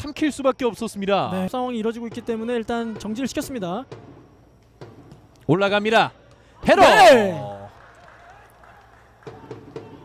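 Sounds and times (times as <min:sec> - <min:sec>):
open-air stadium ambience: 0:00.0 - 0:10.0.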